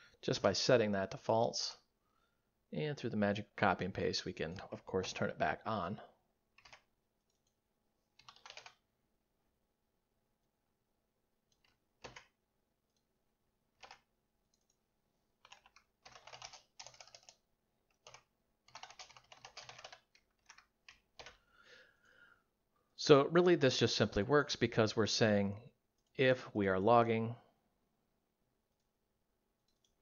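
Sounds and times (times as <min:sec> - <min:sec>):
computer keyboard typing: 0:06.5 - 0:07.6, 0:08.2 - 0:08.9, 0:11.5 - 0:13.0, 0:13.7 - 0:14.8, 0:15.4 - 0:21.4, 0:29.6 - 0:30.0.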